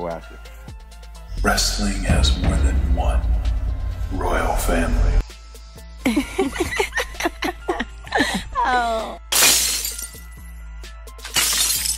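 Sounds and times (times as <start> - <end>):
background music: 0.0 - 11.9
glass shattering: 9.3 - 10.5, 11.2 - 11.9.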